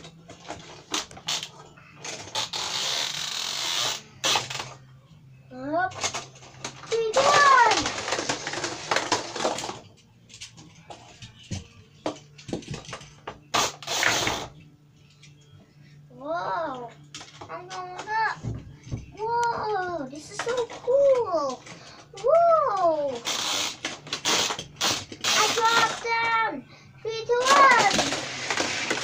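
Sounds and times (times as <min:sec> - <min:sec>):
toy cars clicking and rattling: 0:00.3 - 0:04.8, 0:05.9 - 0:11.0, 0:20.4 - 0:26.4, 0:27.3 - 0:29.0
child making voice sounds: 0:06.9 - 0:07.9, 0:25.3 - 0:28.0.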